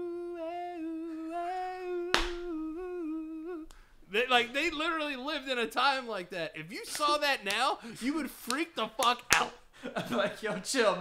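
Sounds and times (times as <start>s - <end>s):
man humming a held note: 0.0s - 3.7s.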